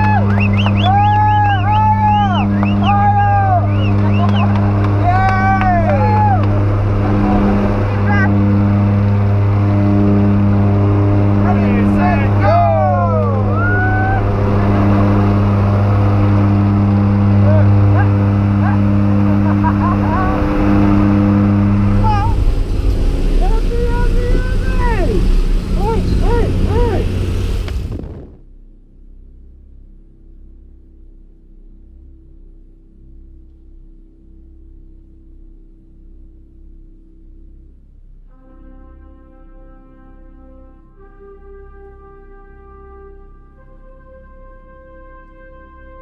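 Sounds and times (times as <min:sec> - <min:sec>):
man yelling: 0:00.0 - 0:06.5, 0:11.5 - 0:14.3, 0:25.8 - 0:27.1
skydivers whooping and shouting: 0:00.0 - 0:08.3, 0:11.4 - 0:14.9
airplane engines droning: 0:00.0 - 0:29.1
loud rushing wind: 0:00.9 - 0:28.5.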